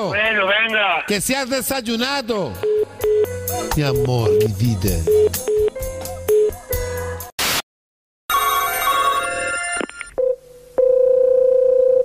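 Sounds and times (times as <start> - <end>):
ringback tone beep: 2.6 - 5.7, 8.3 - 12.0
telephone ringing tones: 8.3 - 12.0.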